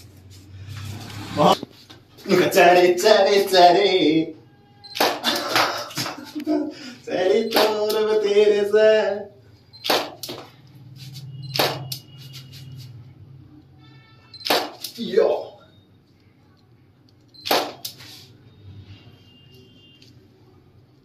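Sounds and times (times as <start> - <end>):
man talking: 2.2 - 4.3, 15.0 - 15.7
man laughing: 5.2 - 7.1
sharp clicks: 14.4 - 15.0.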